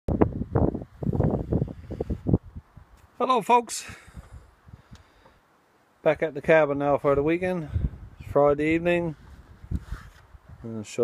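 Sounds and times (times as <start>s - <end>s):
wind buffeting microphone: 0.1s - 3.0s, 7.0s - 10.7s.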